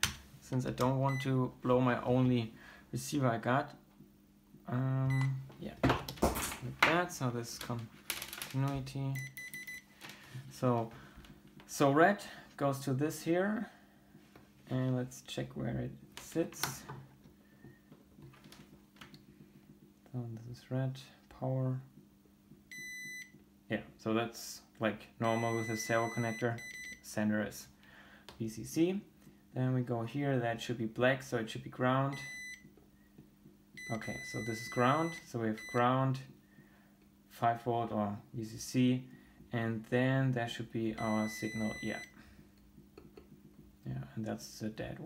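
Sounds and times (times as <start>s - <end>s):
quiet steady hum: 0.0s - 45.0s
multimeter continuity beep: 5.0s - 5.4s, 9.2s - 9.9s, 22.7s - 23.4s, 25.2s - 27.0s, 32.1s - 32.7s, 33.8s - 35.9s, 41.0s - 42.2s.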